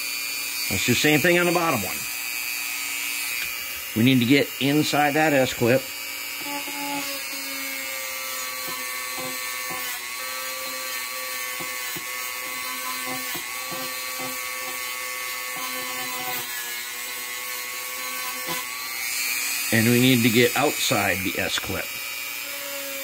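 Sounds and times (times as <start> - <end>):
rotary tool motor whine: 0.0 - 23.0.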